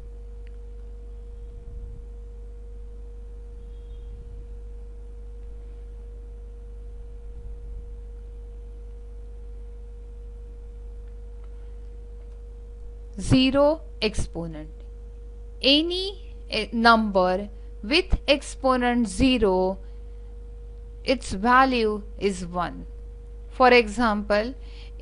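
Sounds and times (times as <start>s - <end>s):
constant mid-pitched tone: 0.0s - 25.0s
electrical hum: 0.0s - 25.0s.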